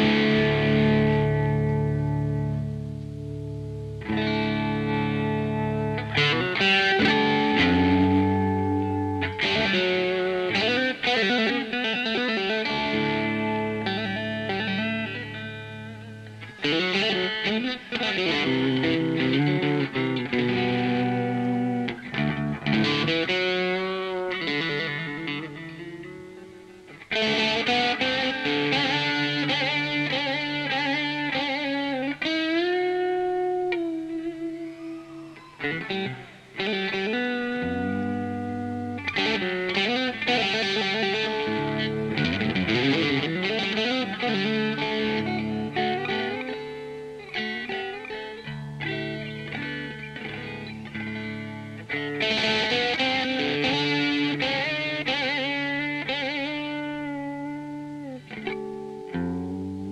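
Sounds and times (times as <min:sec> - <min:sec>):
electric guitar melody: 0:00.0 - 0:59.9.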